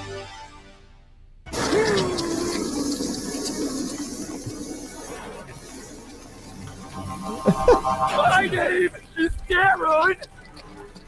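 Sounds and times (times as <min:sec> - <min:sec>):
steady rushing noise: 0:02.6 - 0:11.0.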